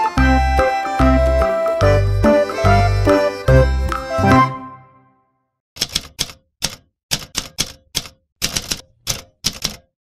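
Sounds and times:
typewriter key strikes: 0:05.8 - 0:09.9.

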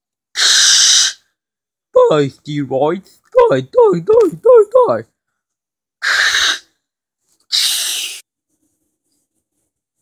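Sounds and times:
person making hissing mouth sounds: 0:00.4 - 0:01.2, 0:06.0 - 0:06.7, 0:07.5 - 0:08.2.

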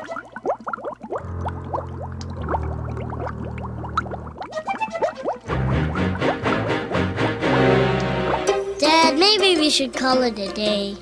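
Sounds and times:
cartoon bubble bloops: 0:00.0 - 0:06.8, 0:07.5 - 0:08.6.

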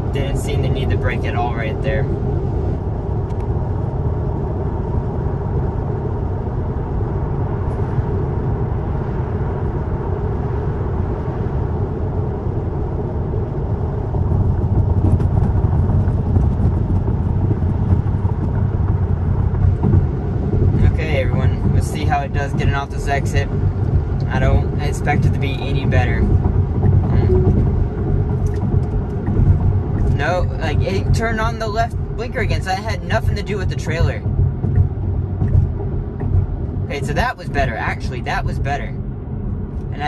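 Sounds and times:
car cabin tyre and wind noise: 0:00.0 - 0:40.0.

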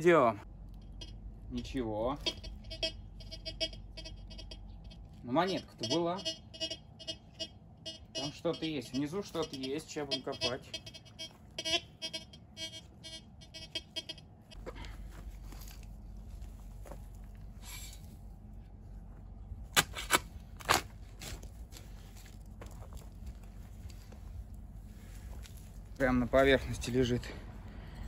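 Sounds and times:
metal detector pulsing tone: 0:00.8 - 0:14.6.

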